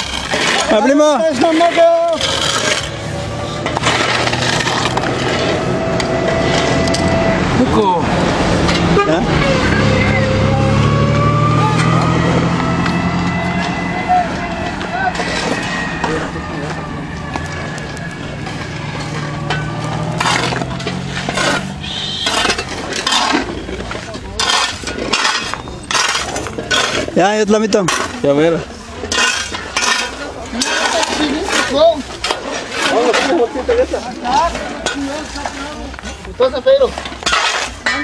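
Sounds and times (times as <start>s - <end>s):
vehicle engine humming: 0.0s - 37.9s
voices: 0.0s - 38.0s.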